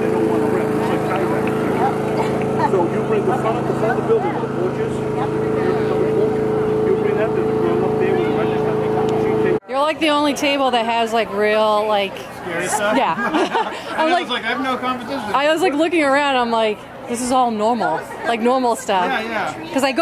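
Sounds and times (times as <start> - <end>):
small engine running: 0.0 - 11.3.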